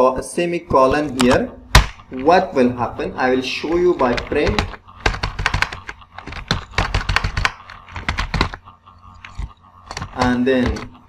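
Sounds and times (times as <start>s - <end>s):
computer keyboard typing: 3.5s - 11.0s.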